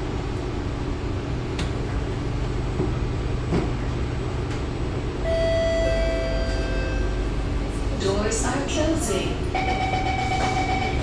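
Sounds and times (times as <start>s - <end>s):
train low hum: 0.0s - 11.0s
steady electronic tone: 5.2s - 7.6s.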